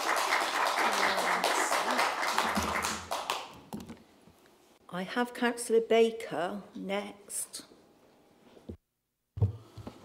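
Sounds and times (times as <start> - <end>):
crowd applause: 0.0 - 3.6.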